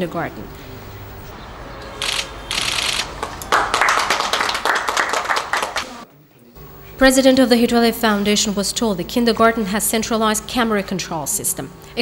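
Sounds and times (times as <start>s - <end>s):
people applauding: 2.0s - 6.1s.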